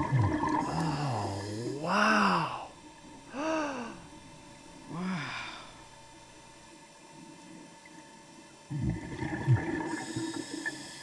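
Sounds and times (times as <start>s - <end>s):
underwater regulator bubbles: 0.0s - 1.6s, 8.7s - 10.8s.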